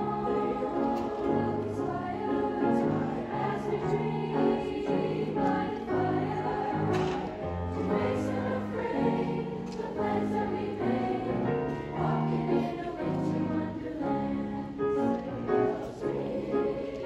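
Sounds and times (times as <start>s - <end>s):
choir singing held chords: 0.0s - 17.0s
piano accompaniment: 0.0s - 17.0s.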